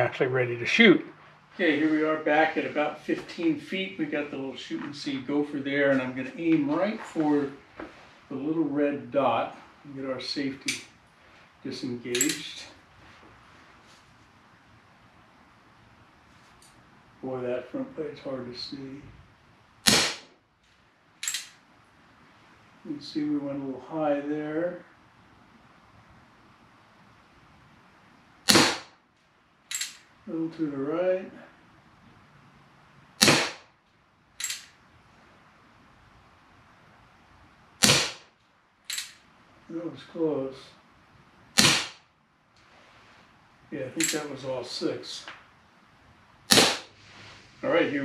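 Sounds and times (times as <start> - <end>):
air pistol shot pop: 33.2 - 33.6, 41.6 - 42.0, 46.5 - 46.9
high-pitched snap: 41.6 - 42.0, 46.5 - 46.9.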